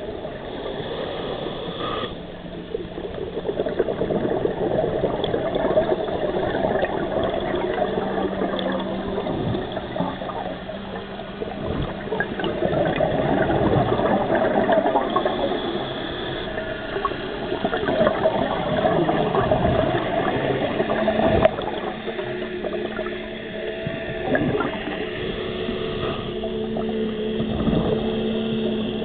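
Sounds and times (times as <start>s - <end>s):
water bubbling and rushing: 0.0s - 29.0s.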